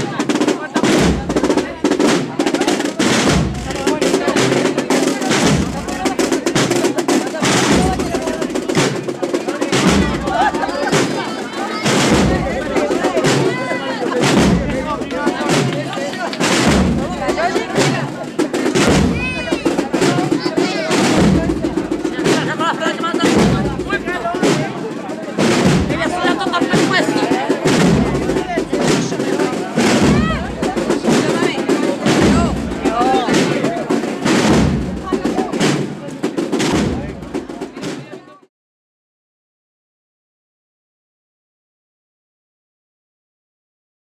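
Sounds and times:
crowd chatter: 0.0 - 38.5
marching band: 0.0 - 38.5
bass drum beating slowly: 3.1 - 9.0, 11.9 - 15.7, 16.5 - 20.2, 21.0 - 24.6, 25.4 - 31.3, 32.0 - 35.5.

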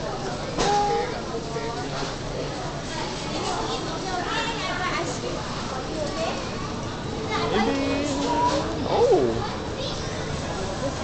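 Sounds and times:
indistinct chatter of passersby: 0.0 - 11.0
high-pitched young voices: 7.3 - 9.5.

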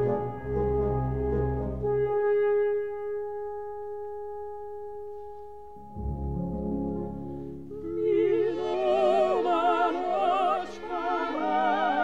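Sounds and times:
orchestra playing: 0.0 - 4.0, 5.8 - 12.0.

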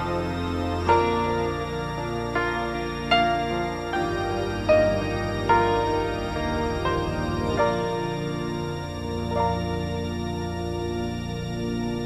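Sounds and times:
slow grand piano piece: 0.0 - 12.0.

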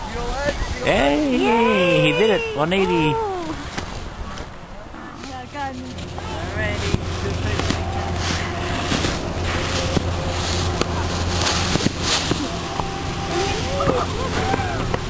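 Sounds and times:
snowboard scraping over snow: 0.1 - 15.0
indistinct voices: 0.8 - 15.0
steady low hum: 0.9 - 15.0.

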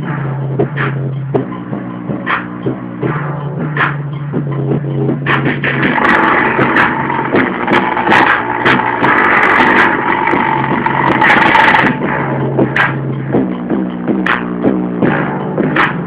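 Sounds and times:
music with a steady beat: 0.0 - 16.0.

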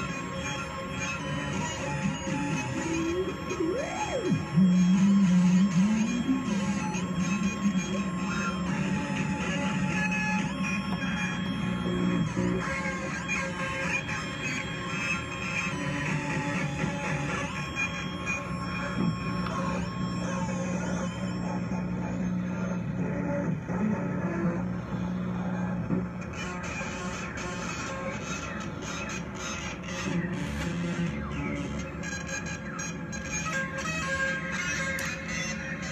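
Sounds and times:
low synthesizer drone: 0.0 - 35.9
wavering synthesizer lead line: 0.0 - 35.9.

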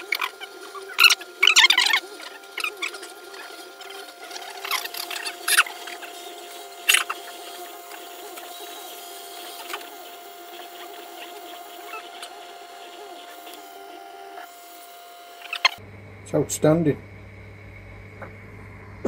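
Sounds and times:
stepper motors chirping: 0.0 - 17.0
steady machine whine: 0.0 - 19.0.

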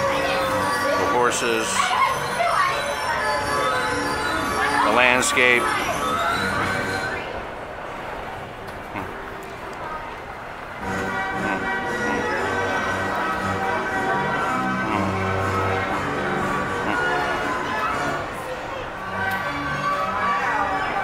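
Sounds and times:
carousel music: 0.0 - 21.0.

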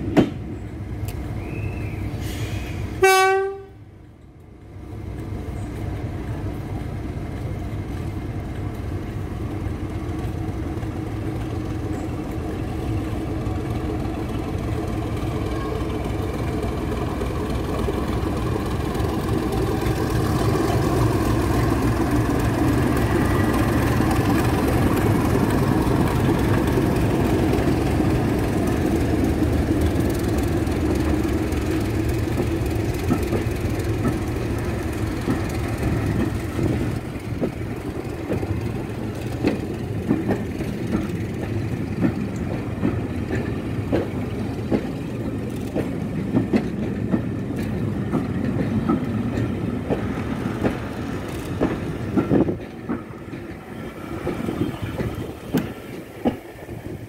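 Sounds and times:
diesel locomotive engine passing: 0.0 - 57.0
train wheels clicking over rails: 5.0 - 57.0.

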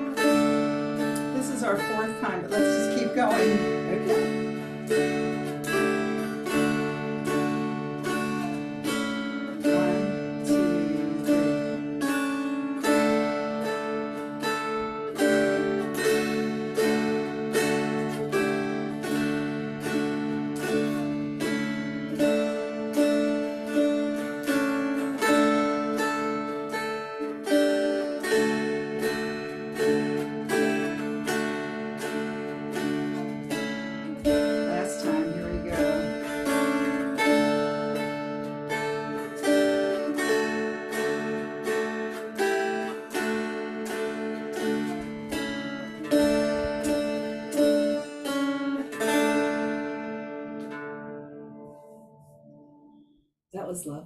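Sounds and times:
low drone strings: 0.0 - 51.0
plucked dulcimer melody: 0.0 - 53.2.

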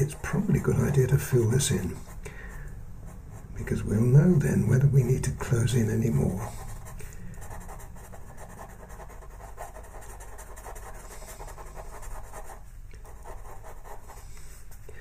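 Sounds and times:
pencil scratching on paper: 4.7 - 14.8.

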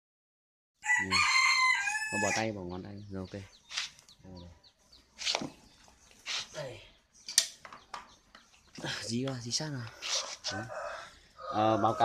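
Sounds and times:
rooster crowing: 0.8 - 2.4, 10.4 - 12.0.

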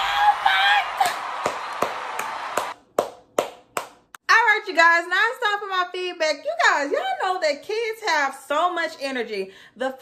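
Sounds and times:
crowd noise: 0.0 - 2.8
rhythmic hand claps: 0.8 - 4.2.

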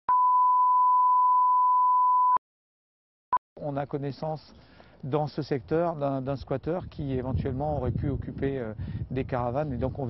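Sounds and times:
steady test tone beep: 0.1 - 2.4.

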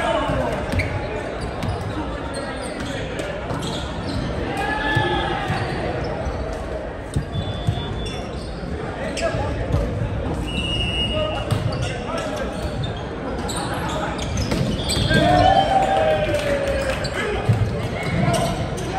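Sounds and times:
overlapping voices in a gym: 0.0 - 18.9
volleyballs being hit and bounced: 6.4 - 8.0, 9.2 - 10.4, 11.4 - 15.5.

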